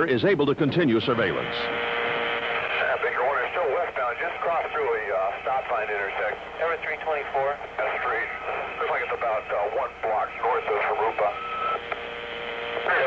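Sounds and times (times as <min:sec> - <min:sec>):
steady radio tone: 0:00.9 - 0:13.0
voices over two-way radio: 0:00.9 - 0:13.0.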